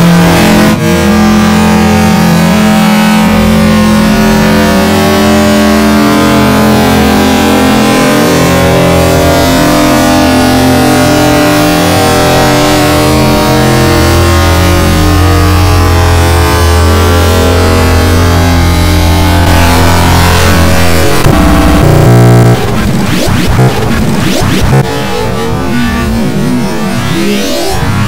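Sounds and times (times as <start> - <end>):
distorted buzzing drone: 0.0 - 28.0.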